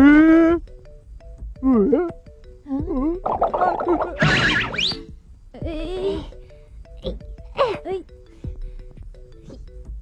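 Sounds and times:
cartoon character cries and grunts: 0.0s - 0.6s, 7.1s - 8.2s
light background music: 0.0s - 10.0s
noisy scramble: 3.2s - 5.1s
sharply rising sound effect: 3.2s - 5.1s.

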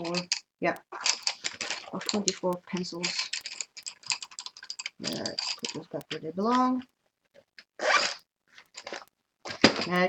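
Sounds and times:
pencils clicking and rattling: 0.0s - 6.9s, 7.6s - 10.0s.

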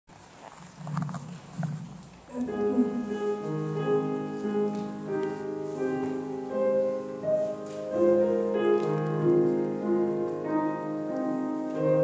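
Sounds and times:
person murmuring: 2.3s - 3.3s.

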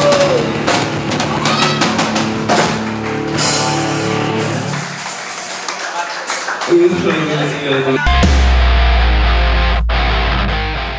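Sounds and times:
rock music: 0.0s - 5.7s, 8.0s - 10.9s.

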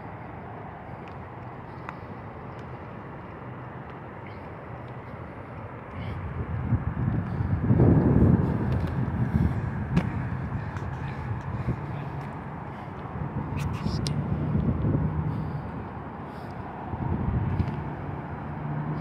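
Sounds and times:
distant city traffic hum: 0.0s - 19.0s
wind gusting on microphone: 5.8s - 19.0s.

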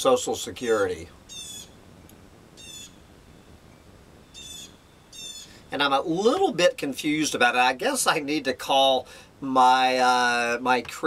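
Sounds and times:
bird calling high: 1.2s - 1.8s, 2.6s - 5.7s.

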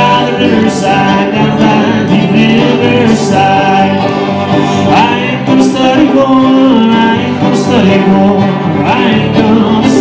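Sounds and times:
string band playing bluegrass: 0.0s - 10.0s.

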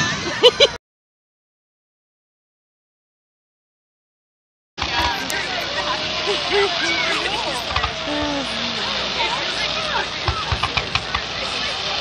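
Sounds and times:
crowd voices and shouts: 0.0s - 0.8s, 4.8s - 12.0s
fireworks thumps and pops: 10.2s - 11.4s.

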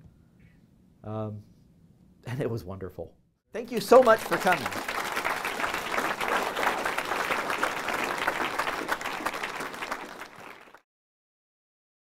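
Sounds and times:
audience applauding: 3.6s - 10.8s.

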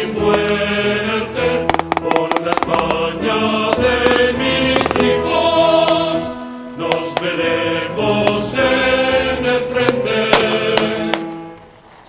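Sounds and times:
choir singing held notes: 0.0s - 12.0s
musical backing: 0.0s - 12.0s
sharp clicks: 0.3s - 0.7s, 1.7s - 3.1s, 3.7s - 5.2s, 5.8s - 6.2s, 6.8s - 7.4s, 8.3s - 8.6s, 9.9s - 11.4s.

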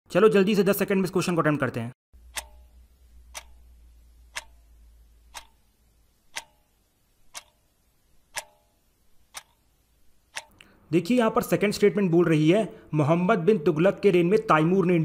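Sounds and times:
clock ticks: 2.2s - 10.7s.

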